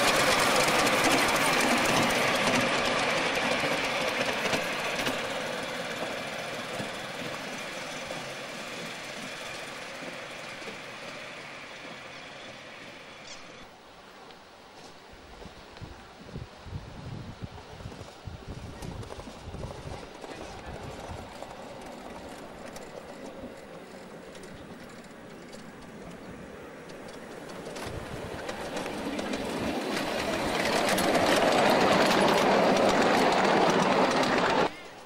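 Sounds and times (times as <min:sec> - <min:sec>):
miniature train wheels clattering: 0:00.0 - 0:13.6, 0:18.8 - 0:35.0.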